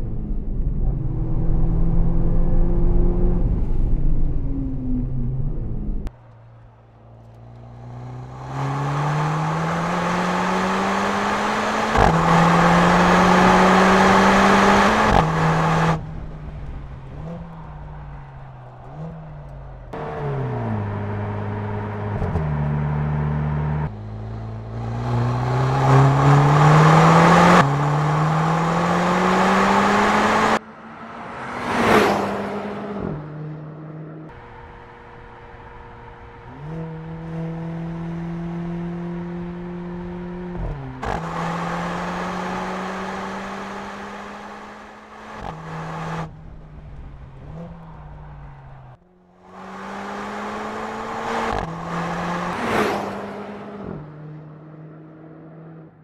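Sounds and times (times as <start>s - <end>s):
car engine accelerating hard: 0.0s - 56.0s.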